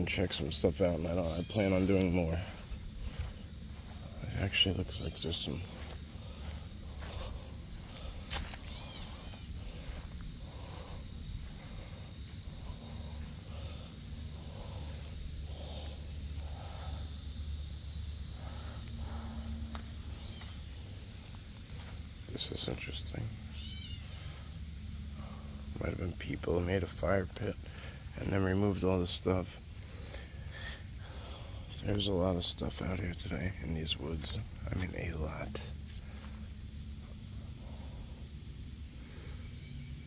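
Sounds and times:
low rumble on microphone: 0.0 - 26.9.

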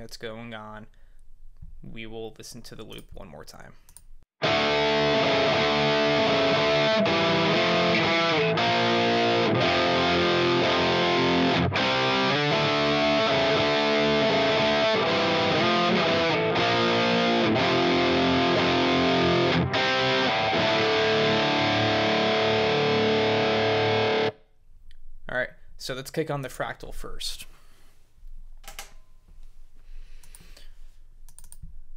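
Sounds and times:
distorted electric guitar riff: 4.4 - 24.4.

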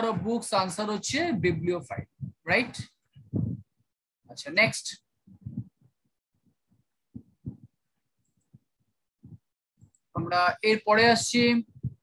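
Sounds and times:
faint short low thumps: 0.2 - 3.7, 5.3 - 5.9, 7.1 - 7.8, 9.2 - 9.5, 11.0 - 12.0.

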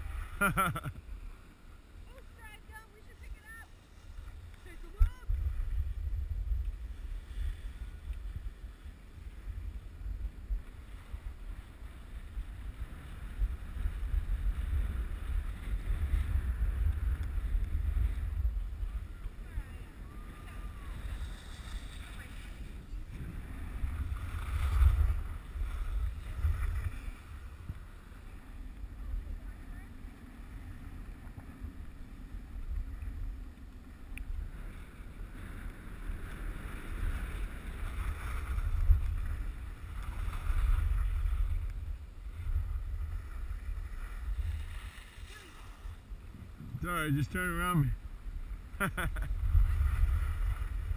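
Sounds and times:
skis sliding on snow: 0.0 - 50.9
wind buffeting microphone: 2.0 - 50.9.

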